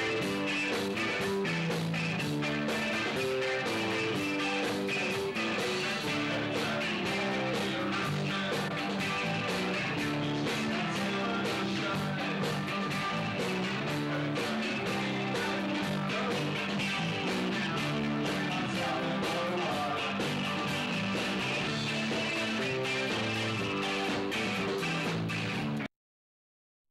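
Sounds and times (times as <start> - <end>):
drum kit with cymbal hits: 0.0 - 25.9
electric bass: 0.0 - 25.9
electric guitar: 0.0 - 25.9.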